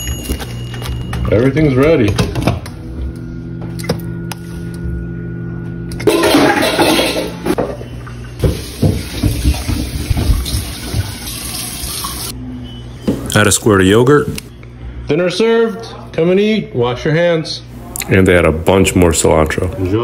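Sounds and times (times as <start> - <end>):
steady low hum: 1.9 - 8.4.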